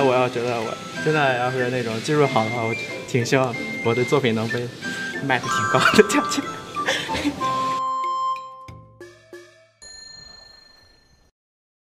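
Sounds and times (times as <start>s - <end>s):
bell-like tone: 5.4s - 8.7s, 9.4s - 11.3s
chime dings: 5.4s - 8.7s, 9.8s - 11.3s.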